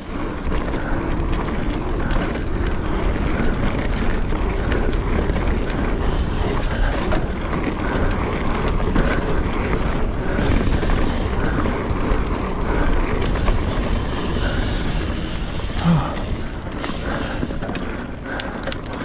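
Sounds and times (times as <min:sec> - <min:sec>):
bike rattles and clicks: 0:00.0 - 0:19.0.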